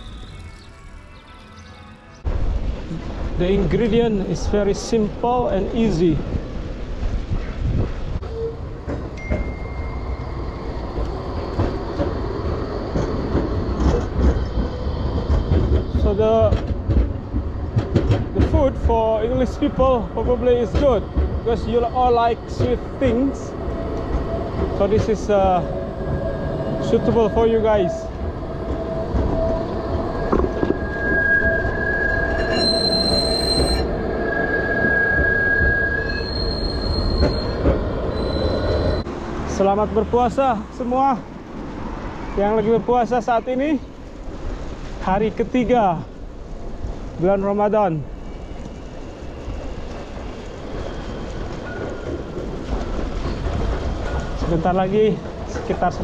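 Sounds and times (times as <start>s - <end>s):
tram wheels squealing: 0.0s - 3.2s, 7.3s - 44.7s, 47.2s - 56.0s
tram low rumble: 0.0s - 56.0s
wind rumble on microphone: 2.2s - 9.4s.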